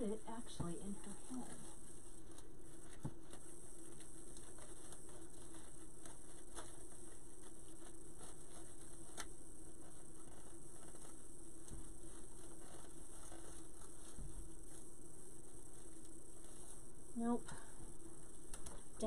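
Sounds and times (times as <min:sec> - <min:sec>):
faint rustling: 0:00.0 - 0:19.0
steady low hum: 0:00.0 - 0:19.0.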